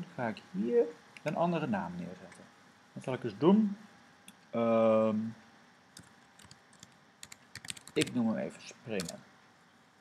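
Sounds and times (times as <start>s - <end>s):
computer keyboard typing: 6.0s - 8.2s, 9.0s - 9.2s.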